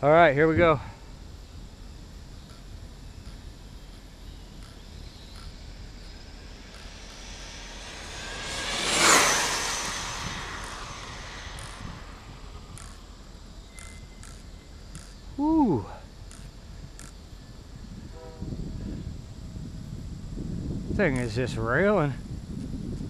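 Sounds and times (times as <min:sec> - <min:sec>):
rc car electric motor whine: 0:01.1 - 0:15.3.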